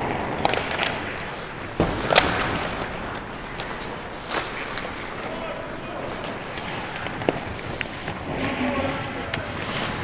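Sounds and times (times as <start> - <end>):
hockey sticks and puck clacking: 0.0 - 10.0
skate blades scraping ice: 0.0 - 10.0.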